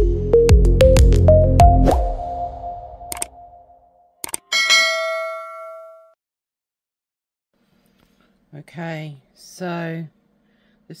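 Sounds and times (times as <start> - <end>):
music with deep bass and percussion: 0.0 - 2.5
short clicks: 3.1 - 3.3, 4.2 - 4.5
bright ringing chime: 4.5 - 6.2.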